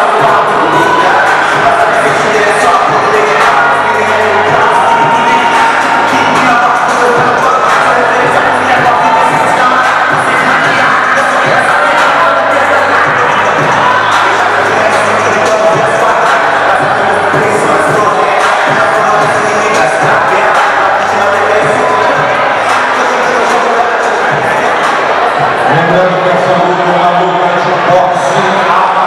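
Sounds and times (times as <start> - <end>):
crowd cheering and shouting: 0.0 - 29.0
loud music: 0.0 - 29.0.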